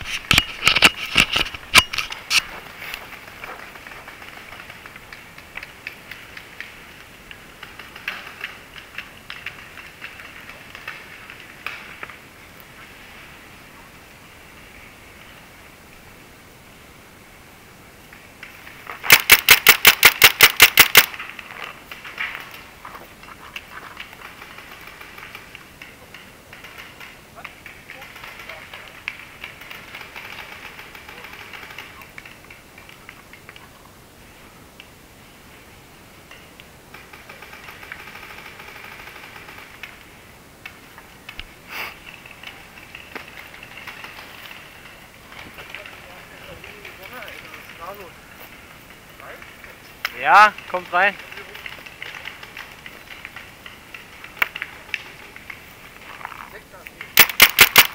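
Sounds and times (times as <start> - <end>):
paintball marker shots: 19.0 - 21.2, 57.2 - 57.9.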